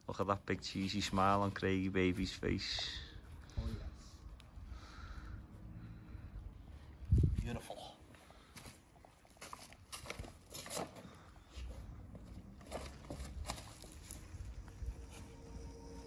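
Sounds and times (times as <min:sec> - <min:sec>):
footsteps on stone paving: 0:08.4 - 0:15.3.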